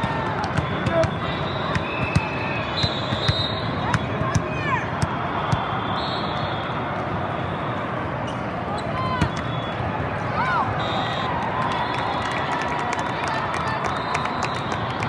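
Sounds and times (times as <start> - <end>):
many voices: 0.0 - 15.0.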